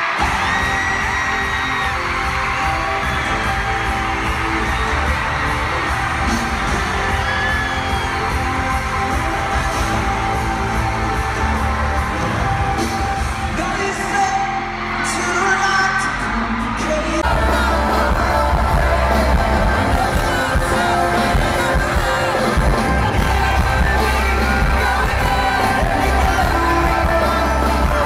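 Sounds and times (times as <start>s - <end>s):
drums: 0.0s - 28.0s
fans screaming and whooping: 0.0s - 28.0s
live pop band playing: 0.0s - 28.0s.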